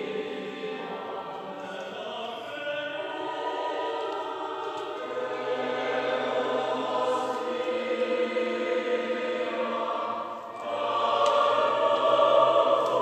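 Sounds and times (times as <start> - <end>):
choir singing: 0.0 - 13.0.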